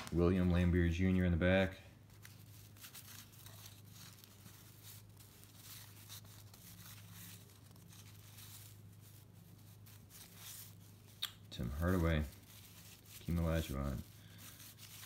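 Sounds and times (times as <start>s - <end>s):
cardboard cards rustling: 0.0s - 15.0s
low steady hum: 0.0s - 15.0s.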